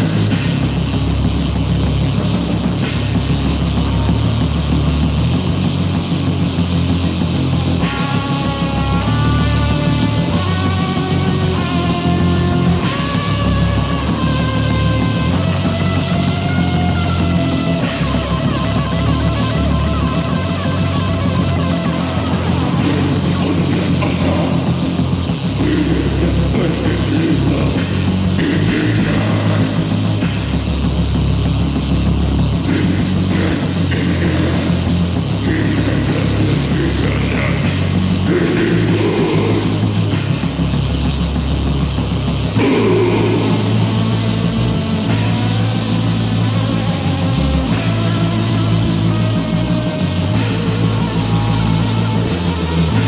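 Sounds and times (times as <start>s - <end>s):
heavy metal band playing: 0.0s - 53.0s.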